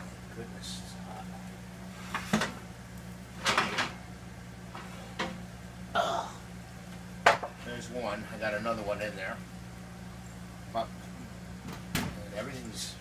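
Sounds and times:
oven rack clanking: 3.4s - 4.0s.

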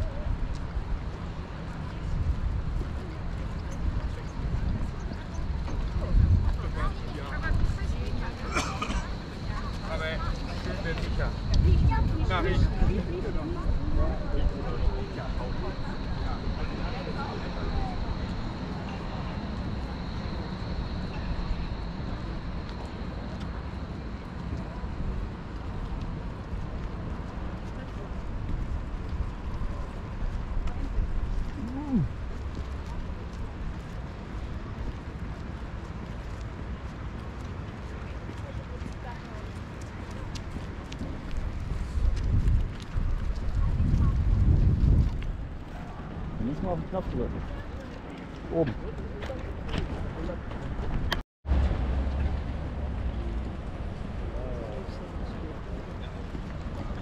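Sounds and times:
voices of passers-by: 0.0s - 57.0s
wind noise on microphone: 2.0s - 8.2s, 10.4s - 15.0s, 40.0s - 46.5s.

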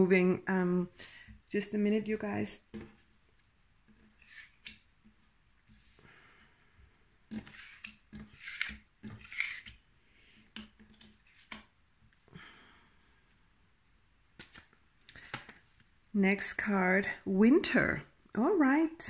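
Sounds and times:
cards scraping across table: 3.9s - 4.9s, 5.6s - 6.1s, 7.3s - 11.7s.

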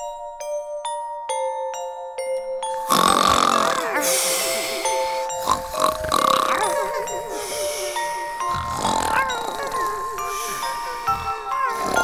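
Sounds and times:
soft music with held notes: 0.0s - 12.0s
cartoon snoring: 2.7s - 12.0s.

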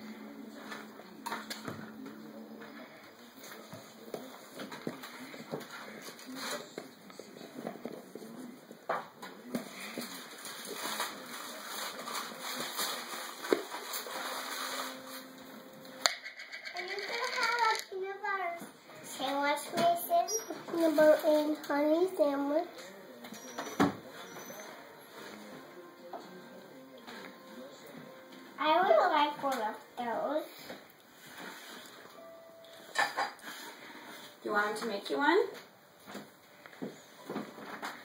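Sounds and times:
child talking: 16.7s - 22.7s, 28.6s - 30.5s.

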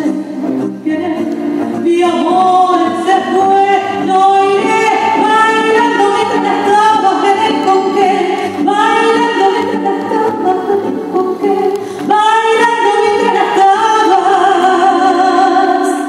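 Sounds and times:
musical accompaniment: 0.0s - 16.0s
woman singing a tango: 0.0s - 16.0s.

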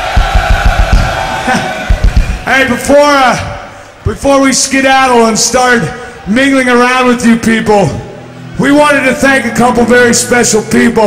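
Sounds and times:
quick low drum thuds: 0.0s - 2.5s.

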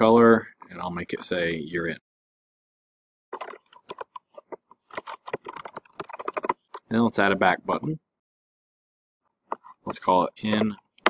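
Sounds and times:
keyboard typing: 3.4s - 6.9s.

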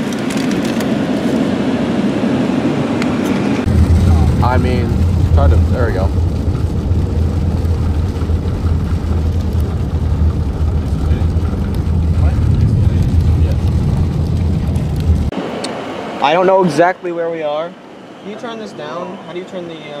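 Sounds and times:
car road noise drone: 0.0s - 20.0s.

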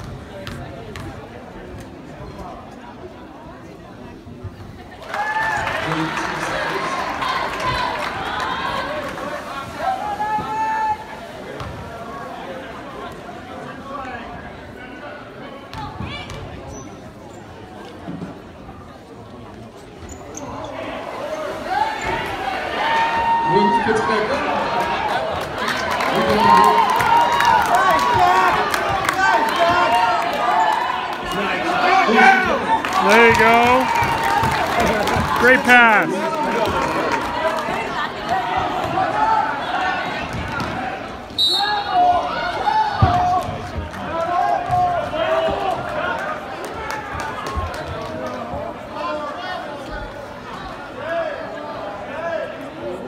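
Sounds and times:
basketball bouncing on court: 0.0s - 1.2s
spectators' voices and shouts: 0.0s - 53.0s.

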